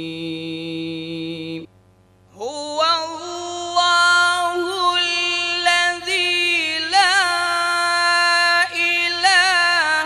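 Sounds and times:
person chanting: 0.0 - 1.7, 2.4 - 10.0.

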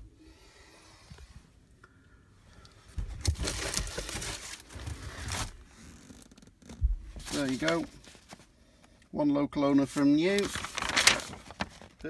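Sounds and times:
paper rustling and crinkling: 3.0 - 8.5, 9.8 - 12.0.

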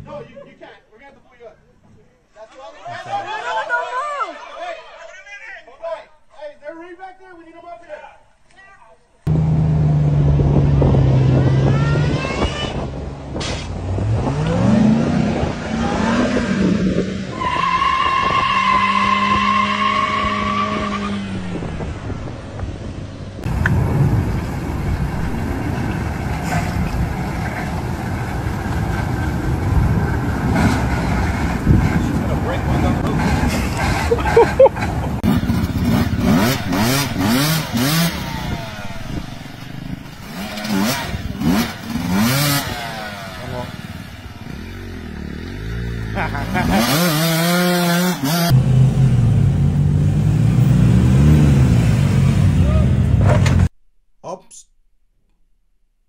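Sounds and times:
other vehicles running: 9.3 - 53.7
pickup engine revving: 9.3 - 53.7.

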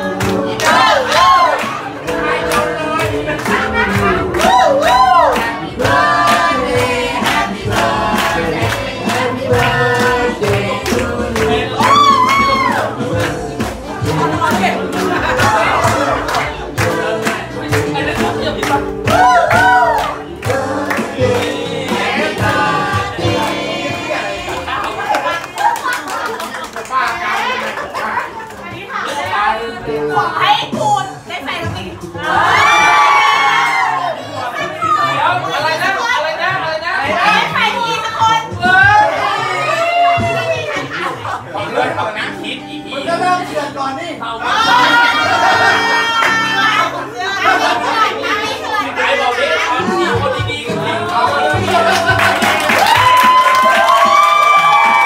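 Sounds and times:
music with steady beat: 0.0 - 24.7
people singing: 0.0 - 25.6, 28.9 - 36.2, 44.4 - 55.0
mixed voices chattering: 0.0 - 55.0
group cheering and shrieking: 3.9 - 5.6, 11.8 - 13.0, 19.1 - 20.2, 32.3 - 34.2, 51.9 - 55.0.

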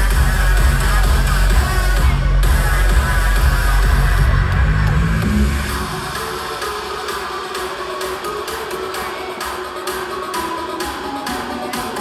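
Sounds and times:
heavy bass: 0.0 - 7.8
loud electronic dance music: 0.0 - 12.0.

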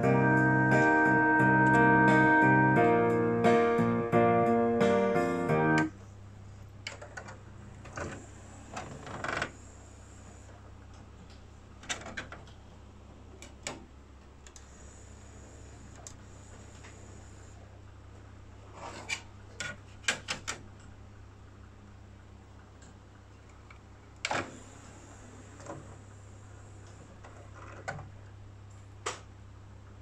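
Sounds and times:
piano and guitar music: 0.0 - 5.9
disc drawer whirring and rubbing: 24.3 - 27.9.

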